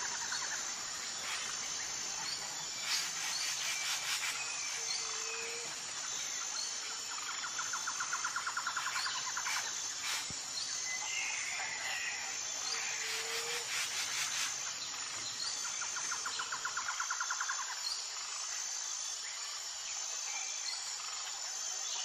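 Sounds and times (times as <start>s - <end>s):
high insect whine: 0.0s - 22.0s.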